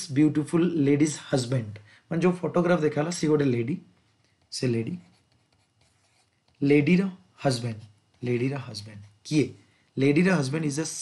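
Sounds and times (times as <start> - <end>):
pen scratching on tablet: 4.0 - 6.8.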